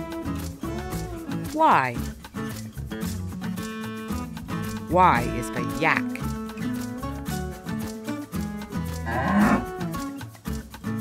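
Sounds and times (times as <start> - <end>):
background music with beat: 0.0 - 11.0
yak mooing: 9.0 - 9.9.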